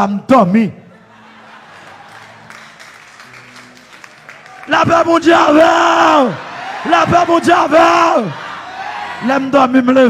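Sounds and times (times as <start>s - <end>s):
faint congregation clapping: 1.5s - 7.5s.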